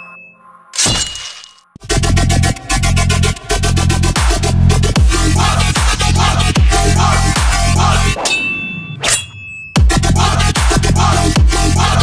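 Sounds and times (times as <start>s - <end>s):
heavy bass and beat: 1.8s - 8.2s, 9.8s - 12.0s
metallic clanging hits: 8.2s - 9.9s.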